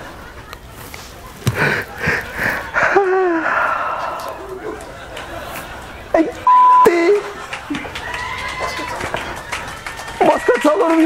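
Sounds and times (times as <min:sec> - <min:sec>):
censor bleep: 0:06.5 - 0:07.0.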